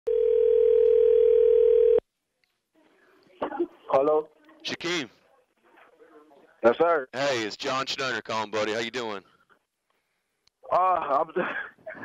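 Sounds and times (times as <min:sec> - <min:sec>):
telephone ringback tone: 0:00.1 - 0:02.0.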